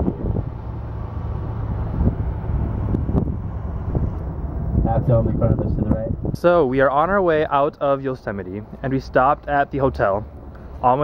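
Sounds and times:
wind noise on microphone: 0:00.0 - 0:06.9
vehicle engine and road rumble: 0:00.0 - 0:11.0.

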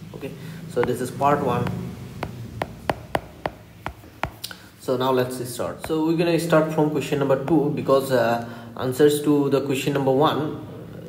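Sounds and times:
stylus tapping on tablet screen: 0:00.8 - 0:04.6, 0:05.8 - 0:06.1.

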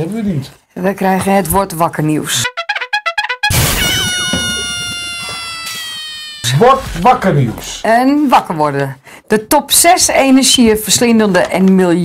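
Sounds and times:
long cry sliding down in pitch: 0:03.4 - 0:06.8.

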